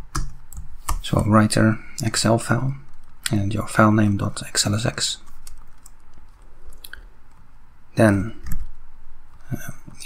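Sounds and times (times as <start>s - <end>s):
low room hiss: 0.0s - 10.0s
computer keyboard clicks: 5.4s - 7.4s.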